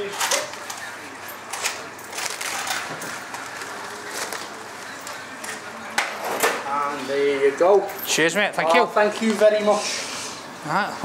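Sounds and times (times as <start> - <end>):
paper rustling and crinkling: 1.5 - 5.7.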